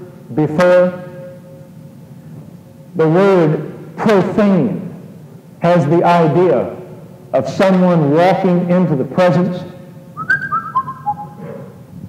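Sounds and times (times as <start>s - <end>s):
high tones stepping down: 10.2s - 11.4s.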